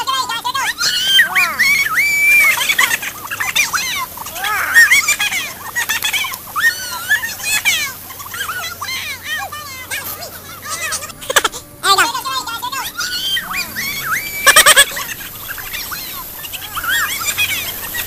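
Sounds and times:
children squealing and laughing: 0:00.0 - 0:18.0.

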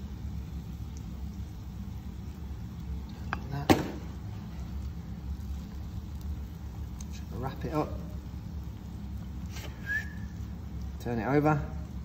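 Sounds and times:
low kitchen hum: 0:00.0 - 0:12.0
flatbread wrap rustling: 0:09.2 - 0:11.1
short high whistle-like tone: 0:09.7 - 0:10.4.

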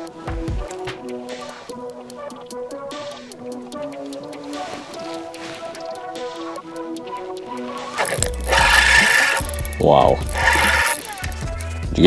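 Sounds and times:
background music: 0:00.0 - 0:12.0
fishing reel whirring: 0:08.0 - 0:11.6.

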